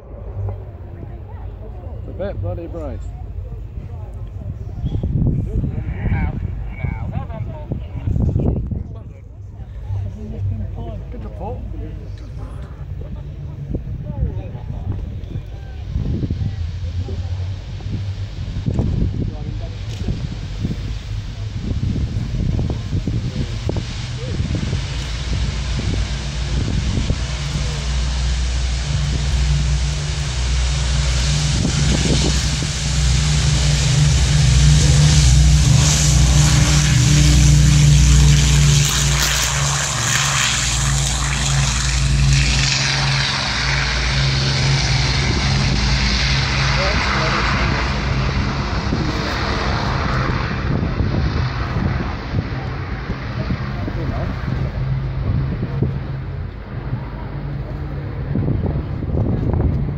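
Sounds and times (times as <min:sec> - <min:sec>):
propeller plane engines at takeoff: 0:00.0 - 0:59.9.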